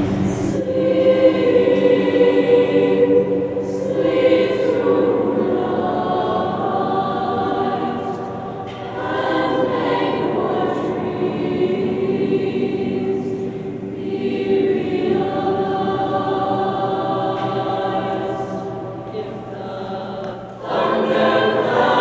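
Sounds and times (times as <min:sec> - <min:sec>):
mixed choir singing chords: 0:00.0 - 0:22.0.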